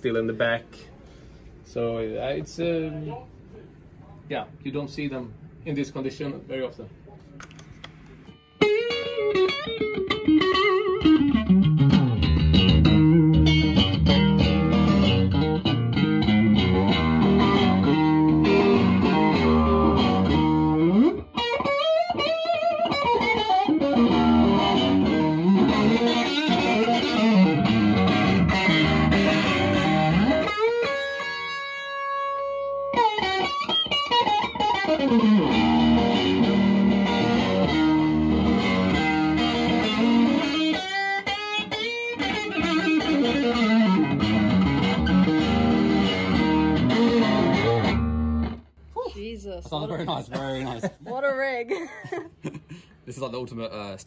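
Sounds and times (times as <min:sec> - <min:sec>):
bluesy electric guitar lead: 0:08.3 - 0:48.7
guitar chord ringing: 0:08.3 - 0:48.7.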